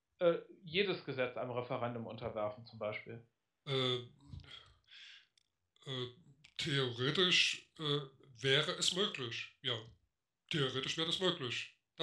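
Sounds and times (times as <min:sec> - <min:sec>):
man saying hesitation sounds: 0:00.2 - 0:04.6, 0:05.9 - 0:09.8, 0:10.5 - 0:11.6
faint breath: 0:04.3 - 0:05.3.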